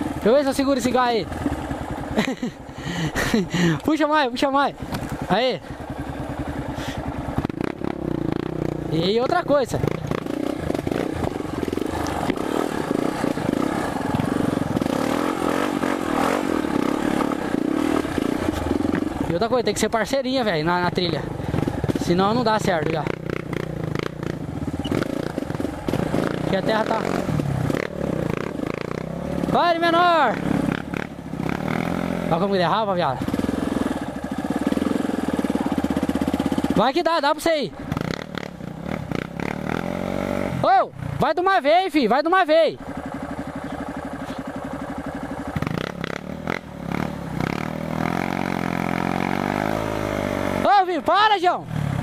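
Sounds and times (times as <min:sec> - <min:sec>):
motorcycle engine revving: 0:00.0 - 0:52.0.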